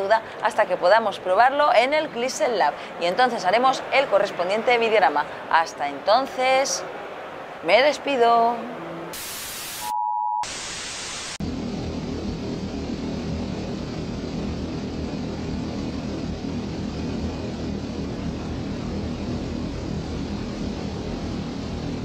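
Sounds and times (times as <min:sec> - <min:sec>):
tv static: 0:09.1 - 0:11.4
electronic test-tone beep: 0:09.8 - 0:10.5
steady droning hum: 0:11.4 - 0:22.0.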